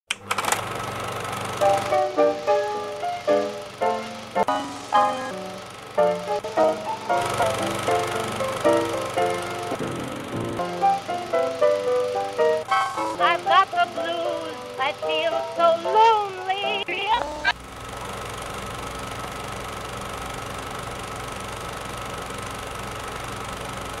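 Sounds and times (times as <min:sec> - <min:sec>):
film projector clicks: 0:00.1 - 0:04.5, 0:05.6 - 0:12.7
film projector rattling: 0:00.1 - 0:24.0
melodic music notes: 0:01.6 - 0:17.5.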